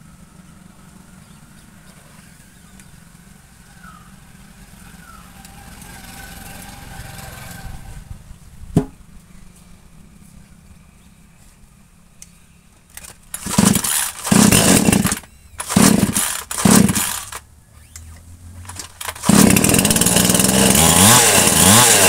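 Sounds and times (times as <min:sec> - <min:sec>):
vehicle engine running: 0:00.0 - 0:21.8
sharp knock: 0:08.8 - 0:09.0.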